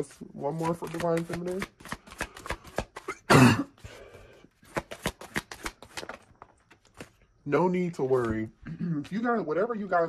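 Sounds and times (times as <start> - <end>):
cards being shuffled: 0.0 - 4.0, 4.6 - 7.2.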